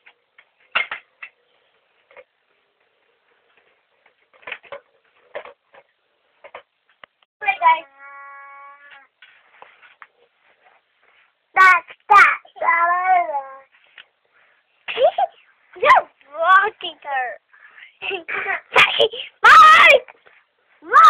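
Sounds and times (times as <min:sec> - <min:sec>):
baby babbling: 0:07.5 - 0:09.1.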